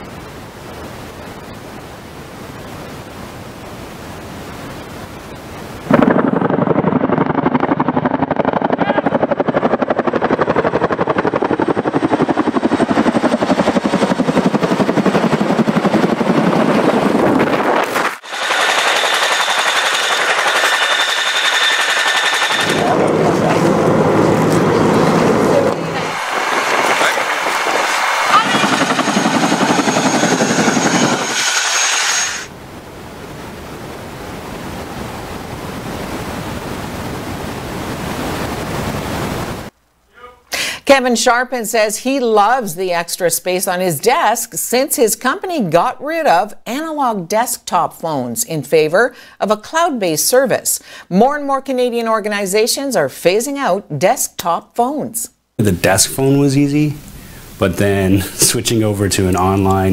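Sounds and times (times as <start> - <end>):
high turbine whine: 0.0 - 39.7
helicopter rotor chop: 5.8 - 32.5.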